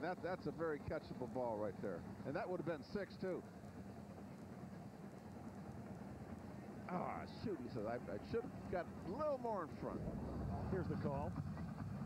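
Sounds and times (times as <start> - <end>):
stadium crowd rumble: 4.0 - 12.0.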